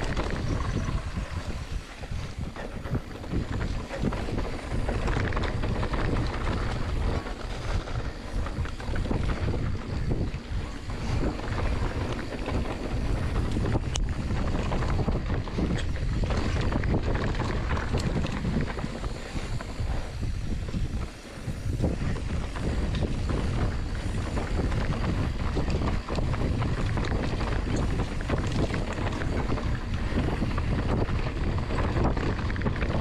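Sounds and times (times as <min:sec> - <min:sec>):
bike rattling: 0:00.0 - 0:33.0
tyres rolling on dirt: 0:00.0 - 0:33.0
wind rushing over microphone: 0:00.0 - 0:33.0.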